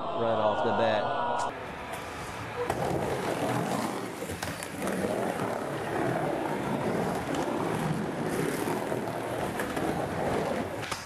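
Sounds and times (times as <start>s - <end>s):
skateboard wheels rumbling: 1.6s - 11.0s.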